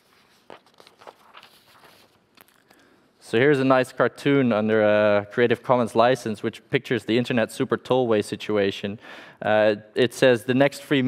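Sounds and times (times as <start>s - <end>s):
paper rustling: 0.0s - 2.7s.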